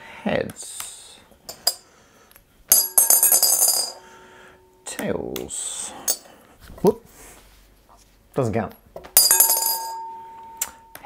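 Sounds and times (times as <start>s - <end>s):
coin clattering in glass bowl: 2.7s - 4.0s, 9.2s - 10.0s.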